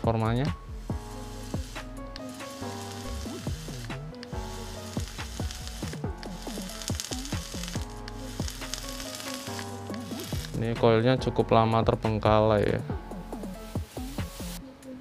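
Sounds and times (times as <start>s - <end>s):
background music: 0.0s - 15.0s
e-liquid sizzling and crackling: 0.8s - 10.8s, 13.4s - 14.6s.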